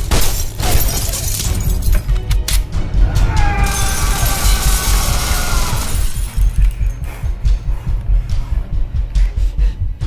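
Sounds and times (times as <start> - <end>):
glass bottles shattering: 0.0 - 2.1, 3.7 - 6.7
action film music with heavy bass: 0.0 - 10.0.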